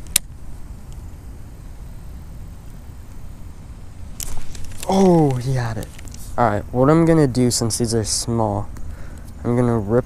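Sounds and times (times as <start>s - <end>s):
low steady rumble: 0.0s - 10.0s
faint ticks: 8.7s - 9.4s.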